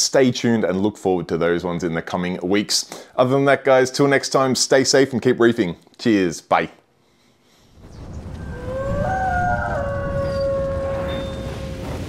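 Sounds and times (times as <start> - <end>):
wailing rising tone: 8.3 - 12.0.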